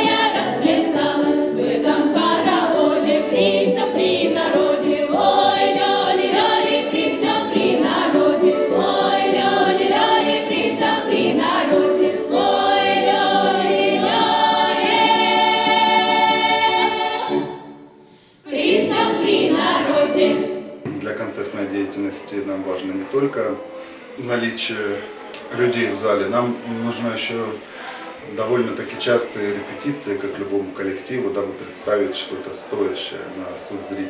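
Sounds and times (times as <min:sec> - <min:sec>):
women's choir singing in harmony: 0:00.0 - 0:20.8, 0:25.0 - 0:30.3.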